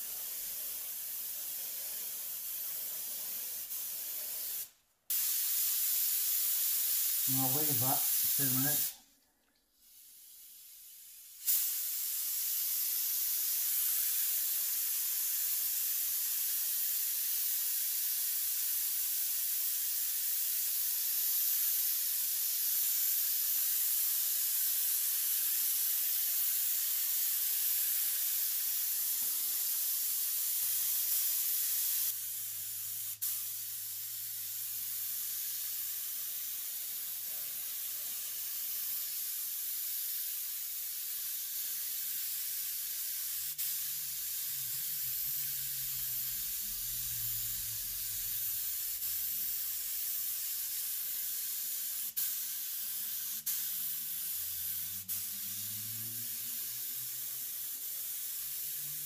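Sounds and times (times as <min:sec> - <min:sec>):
spray gun air hiss: 0:00.0 - 0:09.0, 0:09.8 - 0:59.0.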